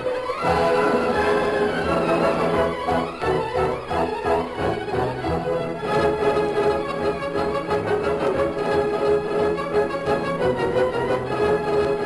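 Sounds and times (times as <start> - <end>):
orchestral string music: 0.0 - 12.0.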